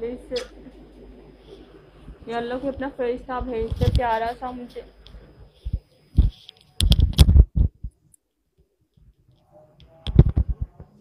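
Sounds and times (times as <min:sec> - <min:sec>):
dull low thumps: 0:07.2 - 0:08.0.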